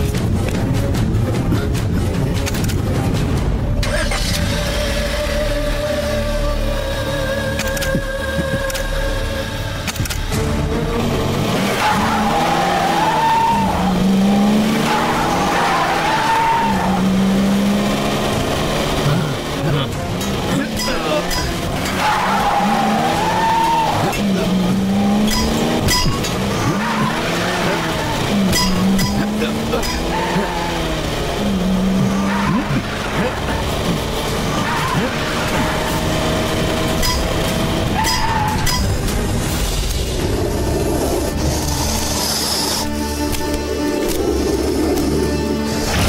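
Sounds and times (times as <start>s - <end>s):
car engine revving hard: 11.0s - 43.3s
wheels spinning and squealing on dirt: 11.3s - 46.0s.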